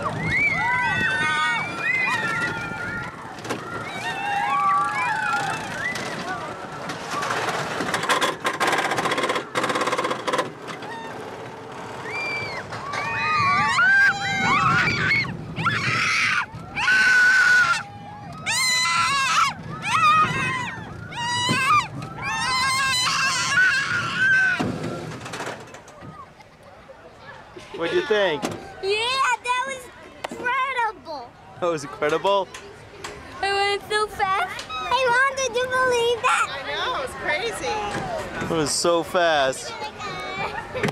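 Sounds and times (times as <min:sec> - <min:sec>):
riders shrieking and yelling: 0:00.0 - 0:07.8, 0:10.7 - 0:25.4
rush of wind: 0:00.0 - 0:08.1, 0:11.9 - 0:25.2
roller coaster clatter: 0:00.0 - 0:40.9.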